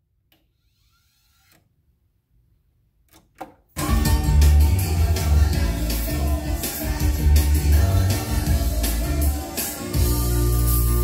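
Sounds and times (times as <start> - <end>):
music from record: 3.8 - 11.0.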